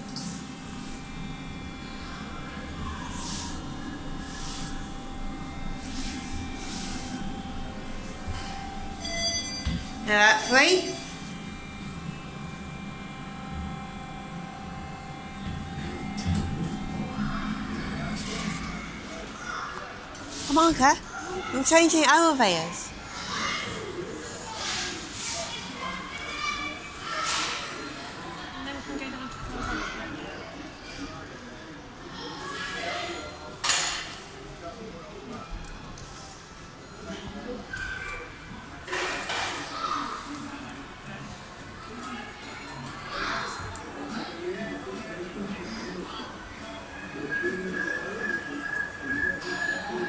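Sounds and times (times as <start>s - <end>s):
thin steady tones: 0.0s - 31.4s
lift electric hum: 0.0s - 42.2s.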